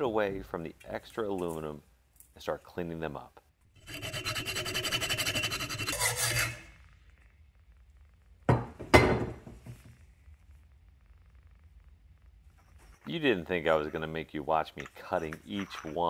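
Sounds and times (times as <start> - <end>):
hacksaw cutting metal: 3.8 - 6.7.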